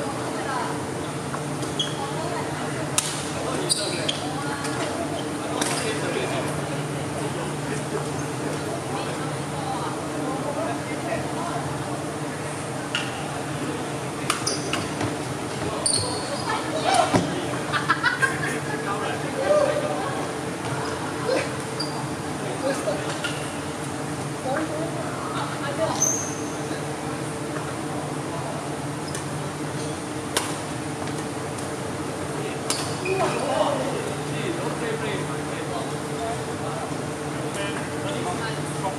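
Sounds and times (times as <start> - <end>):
voices: 0.0 - 29.4
steady hall hum: 0.0 - 38.9
shoe squeak on wooden floor: 1.7 - 2.1, 3.6 - 4.4, 14.4 - 15.1, 15.7 - 16.6.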